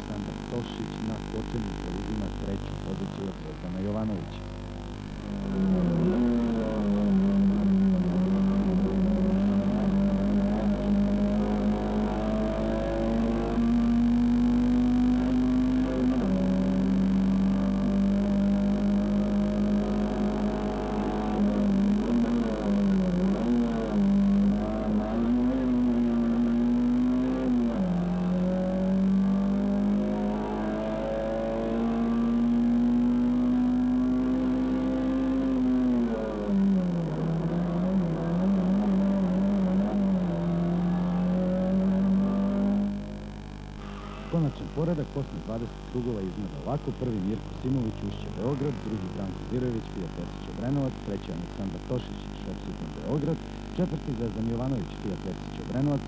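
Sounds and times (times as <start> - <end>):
racing car engine revving: 0.0 - 56.0.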